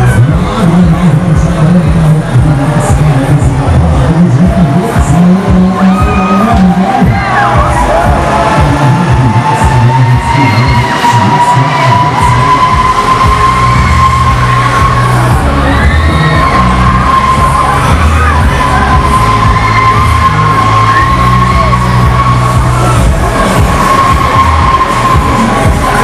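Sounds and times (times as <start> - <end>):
loud ride music with heavy bass: 0.0 - 26.0
machine whine rising in pitch: 6.0 - 26.0.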